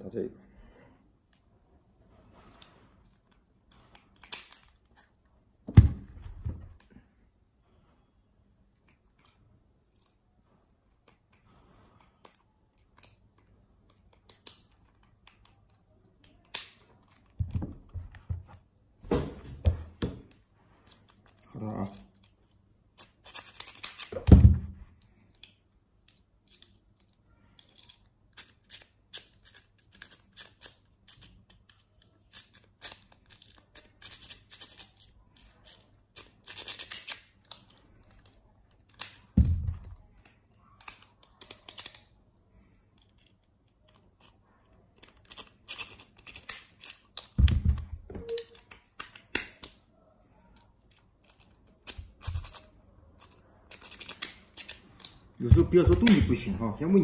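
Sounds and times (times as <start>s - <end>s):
lock picks scraping and clicking: 2.6s - 5.3s, 8.8s - 10.3s, 10.9s - 17.4s, 20.8s - 42.2s, 42.9s - 49.9s, 50.5s - 56.4s.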